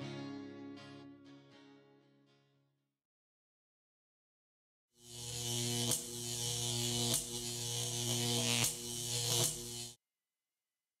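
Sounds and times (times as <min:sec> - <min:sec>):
sharp electrical crackles: 0:05.1 - 0:10.0.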